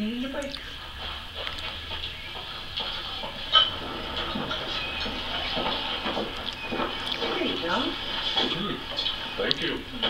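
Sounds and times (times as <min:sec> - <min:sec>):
television dialogue: 0:00.0 - 0:10.0.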